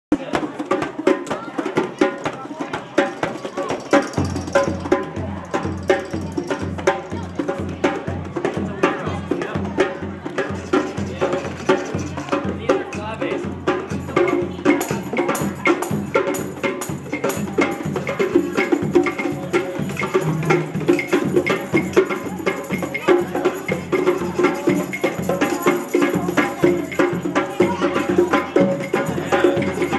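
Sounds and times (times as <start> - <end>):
hand drums playing fast rhythm: 0.1 - 29.9.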